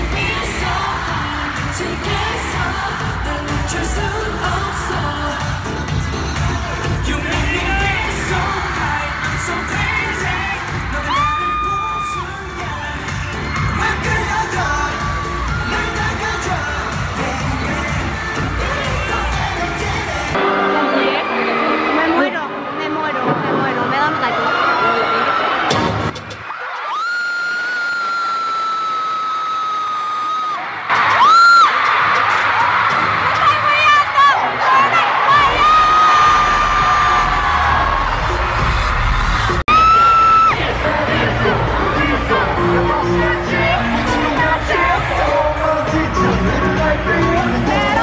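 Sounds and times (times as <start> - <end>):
pop music with singing: 0.0 - 48.0
crowd cheering: 6.2 - 48.0.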